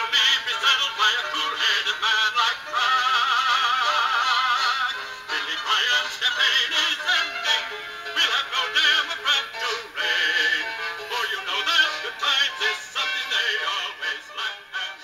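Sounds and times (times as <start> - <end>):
song with sung melody: 0.0 - 15.0.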